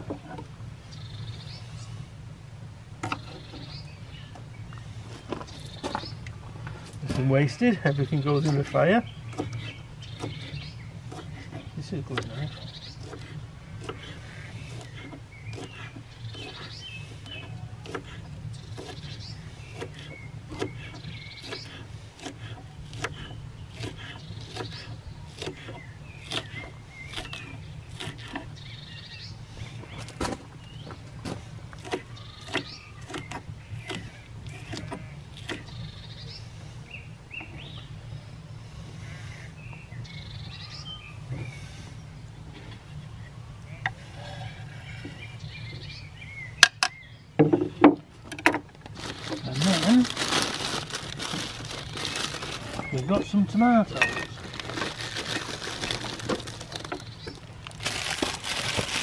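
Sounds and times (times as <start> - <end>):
birds chirping: 0.0 - 2.3, 3.0 - 59.0
knife chopping on wooden board: 17.8 - 19.0.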